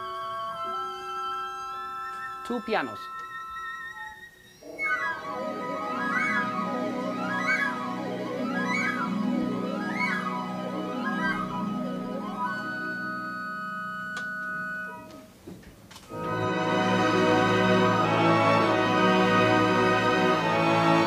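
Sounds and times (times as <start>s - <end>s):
symphony orchestra playing: 0.0s - 14.0s, 16.1s - 21.0s.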